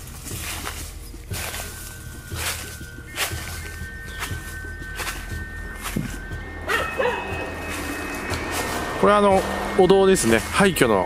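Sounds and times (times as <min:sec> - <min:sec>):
footsteps crunching through leaves: 0:00.0 - 0:11.0
faint steady high tones: 0:01.4 - 0:11.0
wavering voice-like call: 0:06.4 - 0:09.0.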